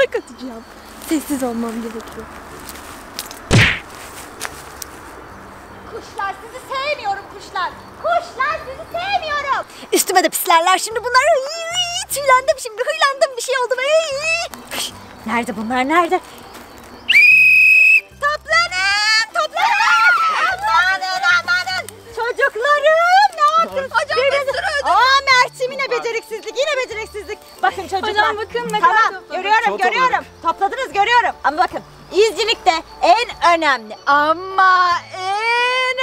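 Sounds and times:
pine cone striking: 2.6 - 4.9
whistle blast: 17.1 - 18.1
excited voices calling out: 17.1 - 31.3.

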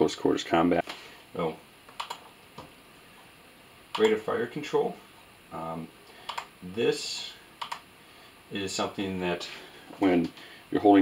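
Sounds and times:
laptop clicks: 1.9 - 2.3, 6.2 - 6.5, 7.6 - 7.9.

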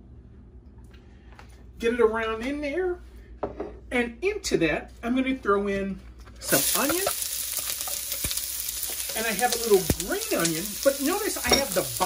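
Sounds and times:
onion sizzling in oil: 6.4 - 12.0.

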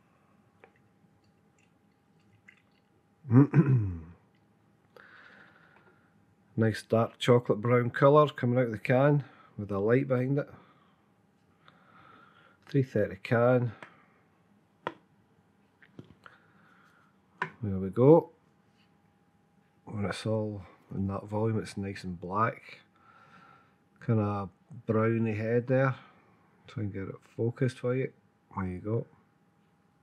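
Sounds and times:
man clearing throat: 3.3 - 4.2.

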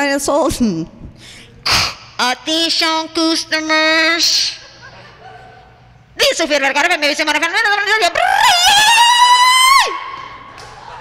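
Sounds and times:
woman's shrill vocal cry: 8.2 - 10.2.

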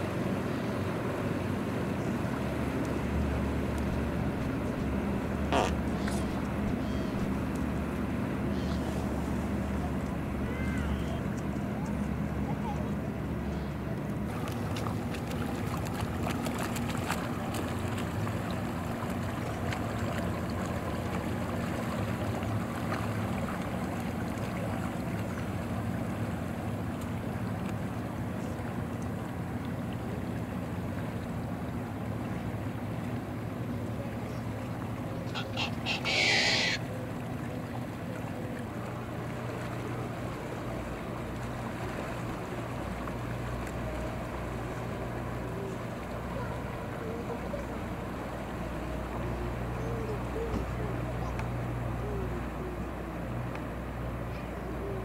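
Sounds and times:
outboard motor humming: 0.0 - 55.0
water and wind wash: 0.0 - 55.0.

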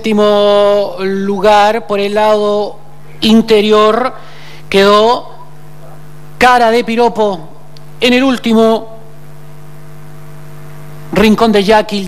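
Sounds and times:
electrical hum and buzz: 0.0 - 12.0.

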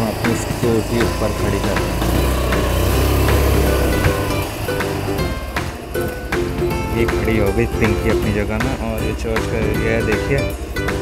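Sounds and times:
background music: 0.0 - 11.0
scooter engine idling: 0.0 - 11.0.

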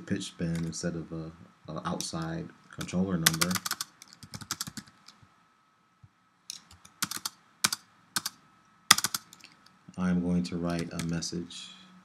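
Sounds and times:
typing on computer keyboard: 2.8 - 5.2, 6.5 - 9.6, 10.7 - 11.2.

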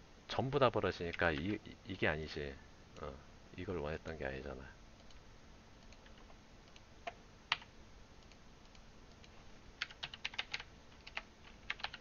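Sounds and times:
computer mouse clicks: 5.0 - 5.2, 5.8 - 12.0
keyboard typing: 5.8 - 12.0.

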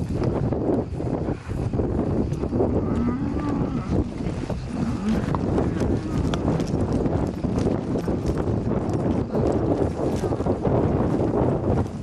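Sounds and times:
horse hoofbeats on grass: 0.0 - 12.0
wind on microphone: 0.0 - 12.0.

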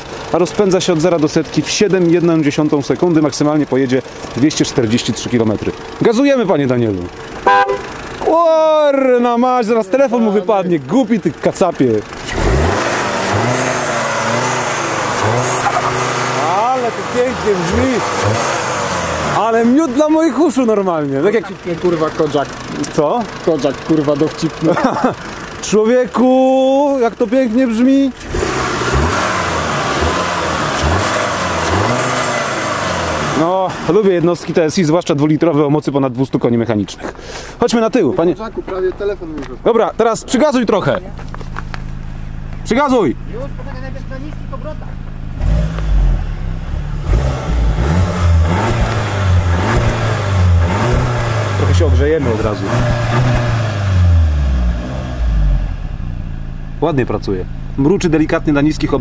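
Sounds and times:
car engine revving: 0.0 - 34.7, 39.5 - 59.0.

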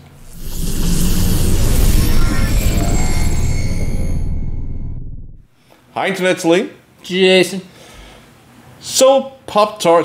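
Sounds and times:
logo sting music: 0.0 - 5.5.

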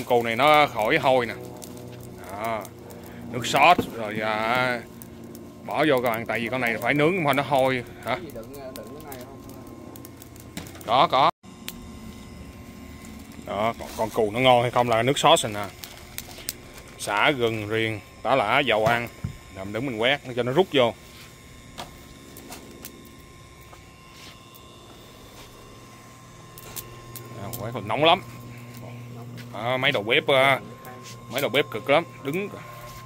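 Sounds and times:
low steady hum: 0.0 - 33.0
man speaking loudly: 3.3 - 4.9, 5.7 - 9.4, 29.6 - 32.6.

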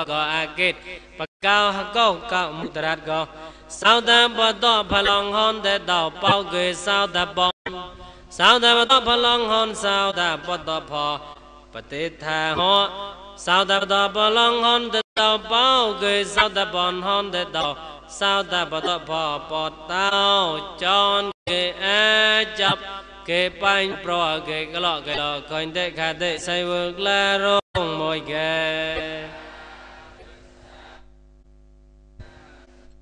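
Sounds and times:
man chanting verses: 0.0 - 31.0.

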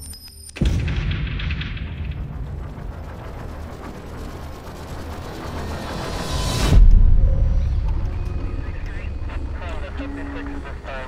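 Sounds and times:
low rumble: 0.6 - 11.0.

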